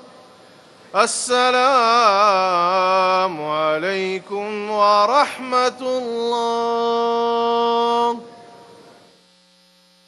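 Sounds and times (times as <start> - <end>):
voice echoing in hall: 0.0 - 8.9
faint steady hum: 0.0 - 10.0
man singing prayer: 0.9 - 8.4.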